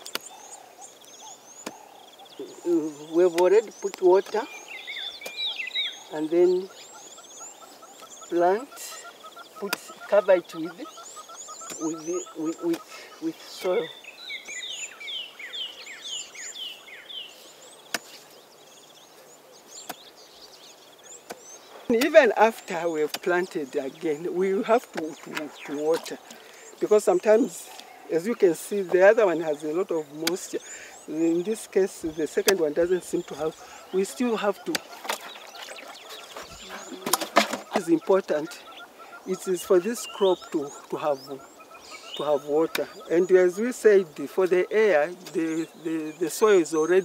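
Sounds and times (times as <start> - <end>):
birds chirping: 0.0 - 47.0.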